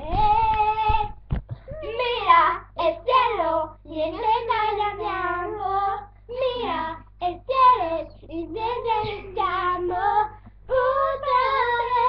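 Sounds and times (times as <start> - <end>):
girls singing unaccompanied: 0.0 - 12.0.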